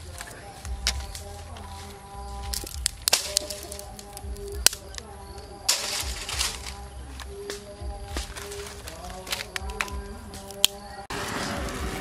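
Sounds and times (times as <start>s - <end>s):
dry twigs snapping: 0.0s - 11.0s.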